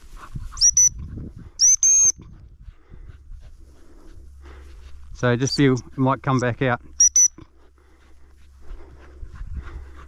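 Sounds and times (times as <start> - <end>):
rustle of walking through dry grass: 0.0 - 1.6, 2.3 - 10.0
dog whistle blasts: 0.6 - 1.0, 1.6 - 2.2, 7.0 - 7.4.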